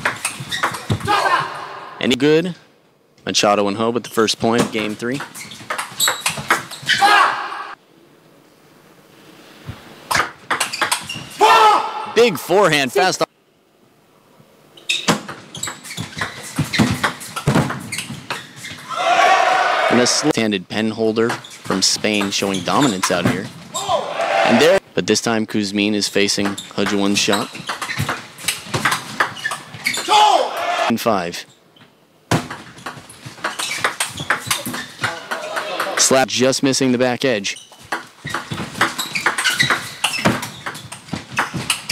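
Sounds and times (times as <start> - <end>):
crowd cheering and shouting: 18.9 - 20.3, 23.8 - 24.8, 30.1 - 30.9.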